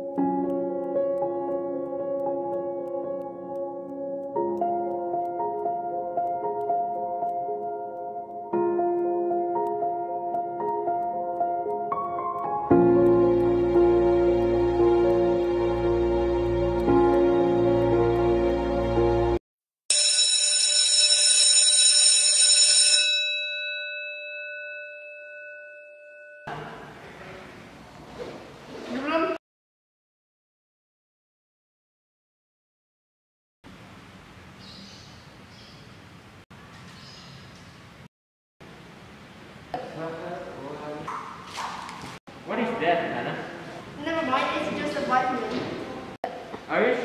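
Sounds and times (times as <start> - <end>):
electric school bell ringing: 19.9 - 26.5.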